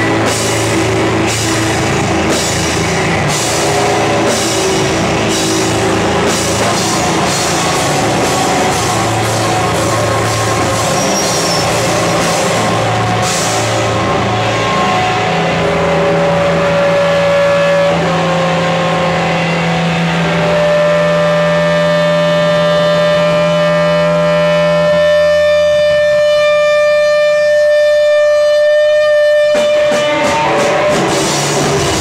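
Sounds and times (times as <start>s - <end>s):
droning electric guitars and bass: 0.0s - 32.0s.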